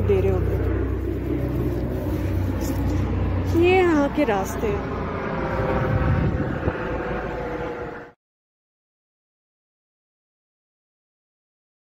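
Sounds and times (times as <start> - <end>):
road traffic rumble: 0.0 - 8.2
wind on microphone: 0.3 - 8.1.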